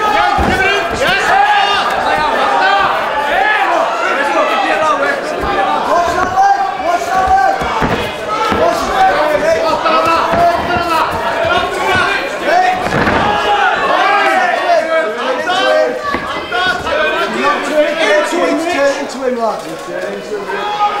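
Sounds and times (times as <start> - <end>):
crowd shouting: 0.0 - 19.4, 20.2 - 21.0
short thuds: 7.0 - 14.0.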